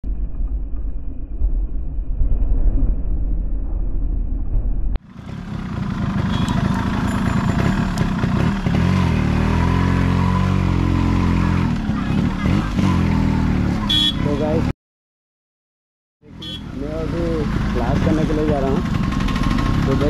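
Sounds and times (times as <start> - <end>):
motorcycle engine revving: 5.0 - 14.7, 16.2 - 20.0.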